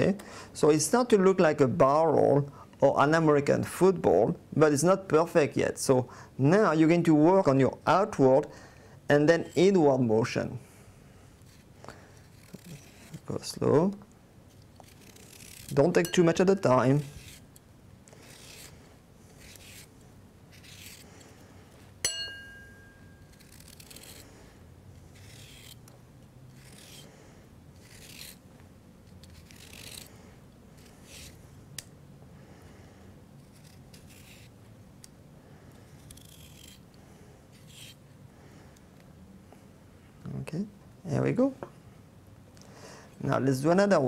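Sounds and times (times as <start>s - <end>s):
knife scraping carrot: 11.4s - 13.6s, 14.5s - 21.3s, 23.2s - 24.3s, 25.0s - 25.9s, 26.5s - 27.1s, 27.8s - 28.4s, 29.1s - 30.2s, 30.8s - 31.4s, 33.4s - 34.6s, 35.8s - 38.0s.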